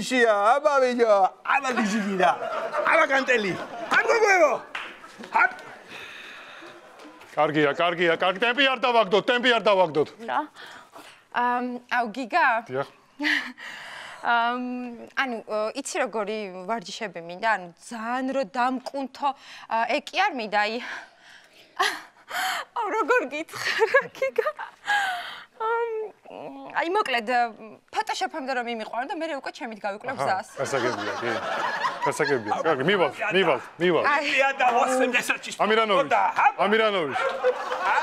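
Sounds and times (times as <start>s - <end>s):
low background noise: 0.0s - 38.0s
woman speaking: 22.8s - 24.8s, 25.6s - 30.5s
woman laughing gasps: 24.8s - 25.5s.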